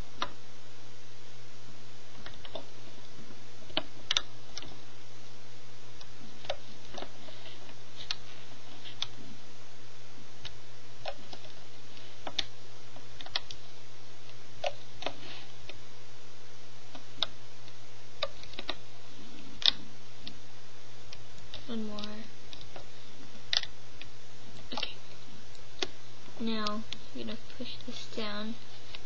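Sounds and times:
low steady hum: 0.0 - 29.0.

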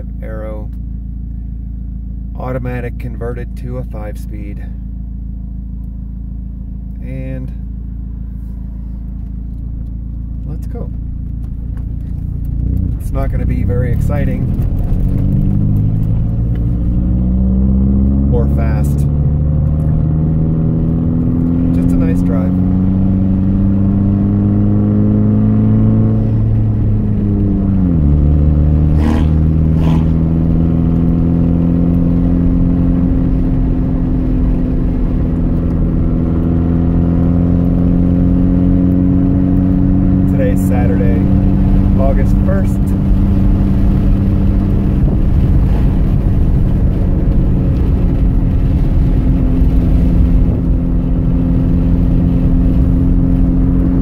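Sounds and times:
car engine running: 0.0 - 54.0.

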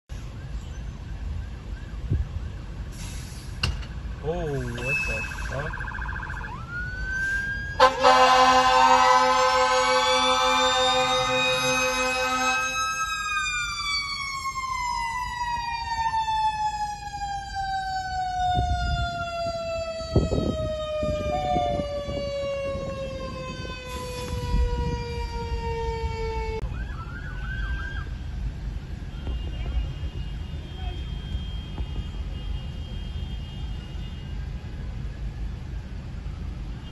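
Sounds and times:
short rising siren chirp: 4.6 - 28.1
mechanical siren winding down: 9.0 - 27.9.

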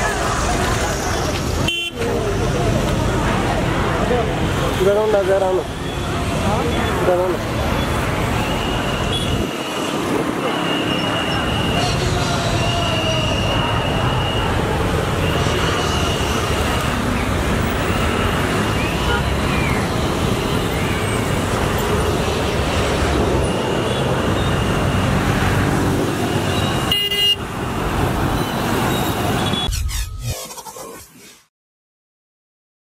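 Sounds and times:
busy road traffic: 0.0 - 31.4
high-pitched vehicle horn tooting: 26.6 - 27.4.

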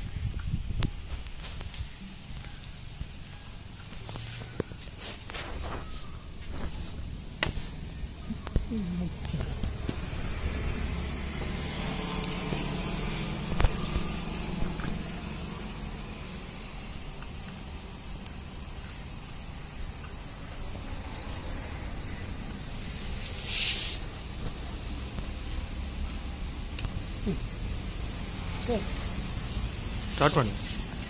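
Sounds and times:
short hiss: 23.2 - 24.1.

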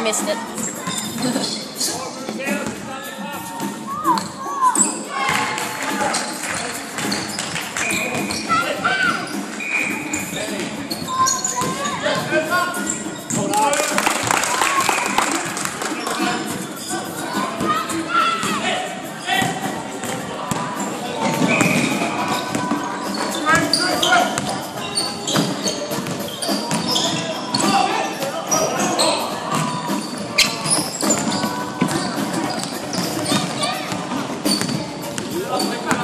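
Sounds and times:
players' voices: 0.0 - 36.0.

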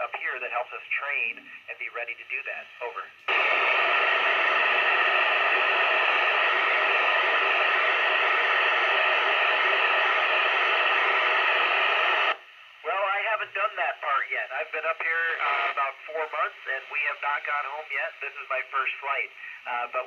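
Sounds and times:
radio static hiss: 0.0 - 20.0.

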